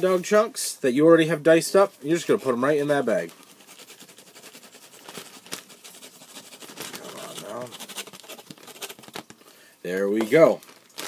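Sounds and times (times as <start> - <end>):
plastic bag crinkling: 2.4 - 11.0.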